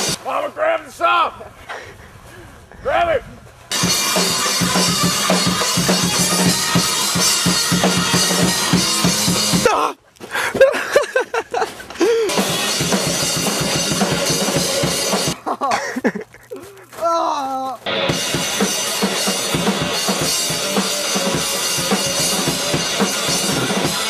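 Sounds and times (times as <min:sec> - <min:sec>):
heavy metal music: 0:00.0 - 0:00.2, 0:03.7 - 0:09.8, 0:12.3 - 0:15.4, 0:17.8 - 0:24.0.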